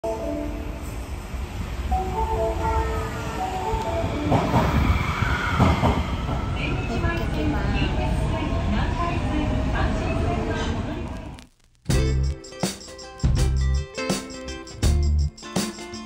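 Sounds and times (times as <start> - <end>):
subway train rumble and motor whine: 0.0 - 11.4.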